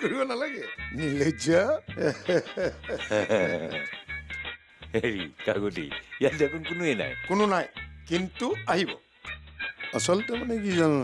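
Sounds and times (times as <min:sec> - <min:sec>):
men laughing heartily: 0:01.9 - 0:04.0.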